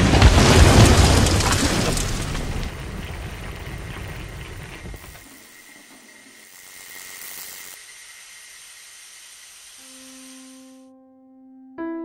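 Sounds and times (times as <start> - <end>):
steady hissing: 2.6 - 10.9.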